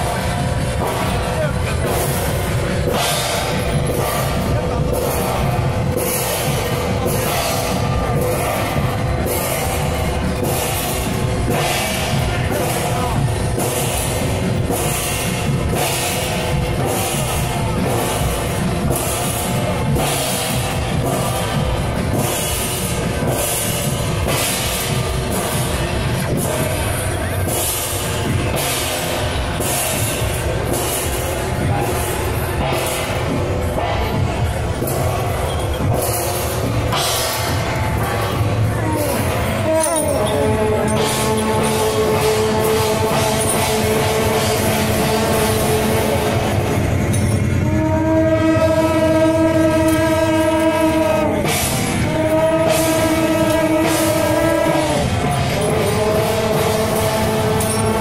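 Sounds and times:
percussion music with drums and cymbals: 0:00.0 - 0:58.0
brass horns sustained note: 0:35.9 - 0:58.0.

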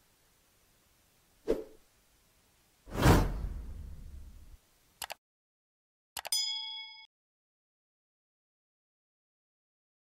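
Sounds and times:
short swoosh: 0:02.9 - 0:04.3
whoosh with low rumble: 0:02.9 - 0:04.6.

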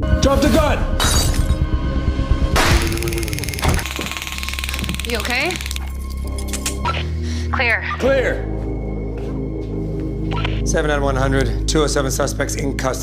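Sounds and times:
tense background music: 0:00.0 - 0:13.0.

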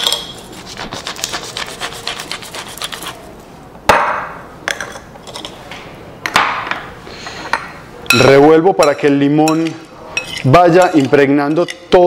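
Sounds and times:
pepper mill grinding: 0:00.0 - 0:03.2.

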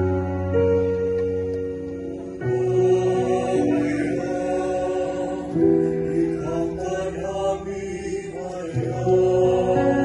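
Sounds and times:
choir singing a slow hymn: 0:01.9 - 0:10.0.

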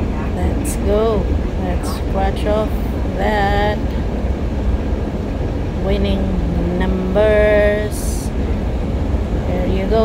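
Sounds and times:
train rumbling inside carriage: 0:00.0 - 0:10.0.

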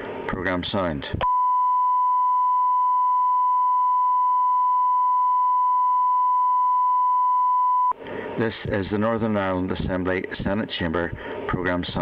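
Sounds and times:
recorded voice: 0:00.3 - 0:01.2, 0:08.4 - 0:12.0
electronic test tone: 0:01.2 - 0:08.0.

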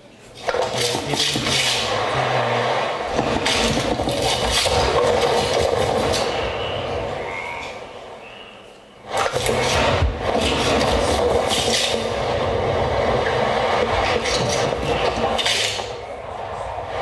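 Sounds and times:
scraping rasping electronic noise: 0:00.4 - 0:07.9, 0:09.0 - 0:17.0
low hum: 0:01.0 - 0:17.0.

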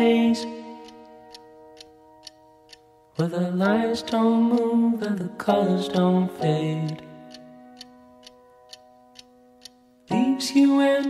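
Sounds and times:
light ticking: 0:00.0 - 0:11.0.

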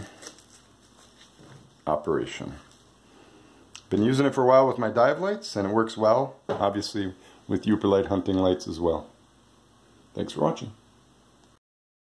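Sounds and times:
fabric rustling: 0:00.0 - 0:02.0.

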